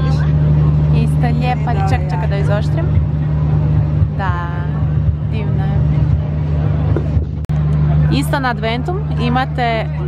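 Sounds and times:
city background rumble: 0.0 - 10.0.

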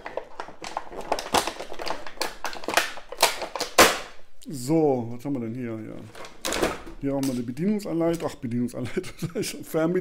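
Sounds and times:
plastic tray crackling and clicking: 0.0 - 3.9
loud plastic snap: 1.1 - 4.2.

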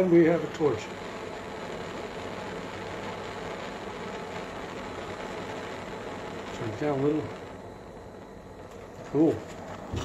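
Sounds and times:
propane torch hissing: 0.0 - 10.0.

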